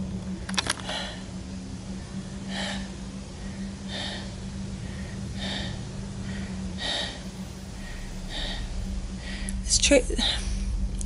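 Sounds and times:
woman breathing hard: 0:00.7 - 0:11.0.

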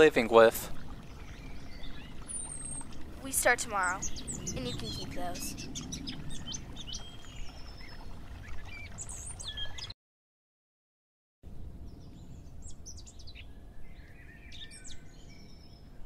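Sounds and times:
outdoor background noise: 0:00.0 - 0:09.9
birds chirping: 0:00.0 - 0:10.0, 0:11.9 - 0:16.0.

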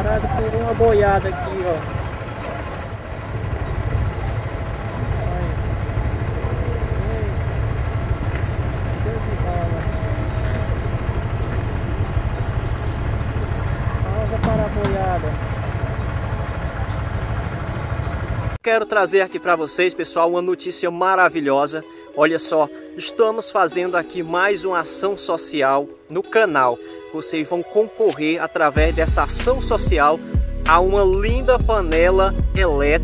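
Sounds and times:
vehicle engine idling: 0:00.0 - 0:18.6
voices: 0:00.0 - 0:19.9, 0:27.2 - 0:33.0.

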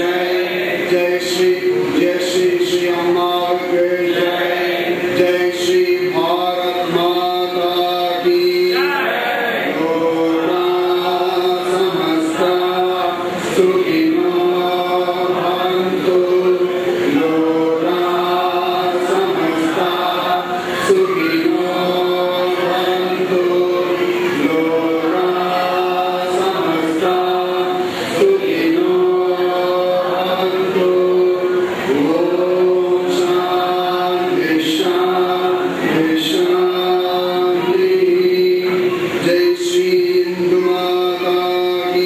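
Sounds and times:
man chanting in long sung notes: 0:00.0 - 0:42.0.

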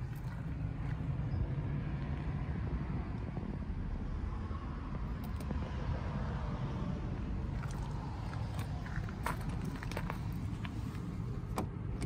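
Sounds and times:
car engine rumbling: 0:00.0 - 0:12.0.

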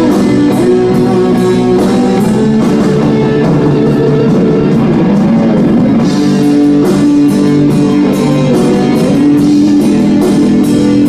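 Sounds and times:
bass guitar: 0:00.0 - 0:11.0
cymbals hitting a beat: 0:00.0 - 0:11.0
electric guitar chords: 0:00.0 - 0:11.0.

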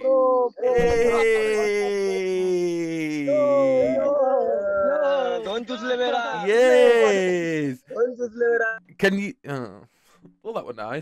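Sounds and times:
men whooping and cheering: 0:00.7 - 0:05.4.

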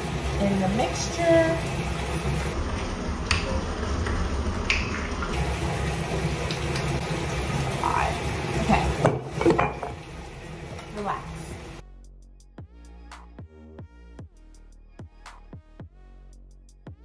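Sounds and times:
bottle and bowl knocking and clinking: 0:09.0 - 0:10.0.

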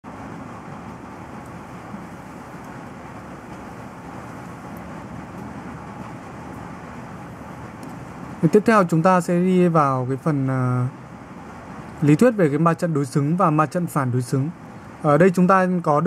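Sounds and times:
low rumble and hiss: 0:00.0 - 0:16.0.

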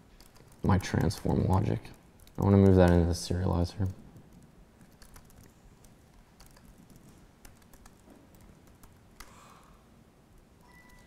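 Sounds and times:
computer keyboard keystrokes: 0:00.2 - 0:09.4, 0:10.4 - 0:11.0.

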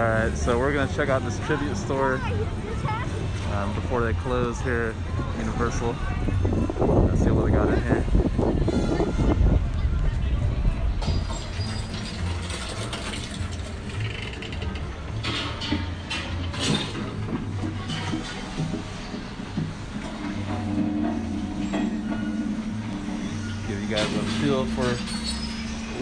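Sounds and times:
mechanical clanking and ratcheting: 0:11.0 - 0:18.8
low droning tone: 0:18.6 - 0:26.0.

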